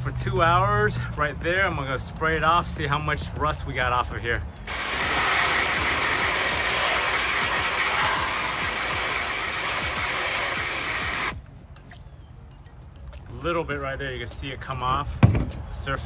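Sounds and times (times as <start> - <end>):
hose spraying water on metal: 4.7 - 11.4.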